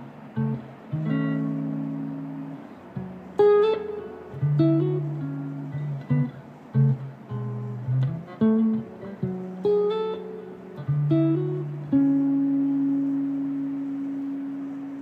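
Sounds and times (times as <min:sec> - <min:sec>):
electric guitar notes and chords: 0:00.0 - 0:15.0.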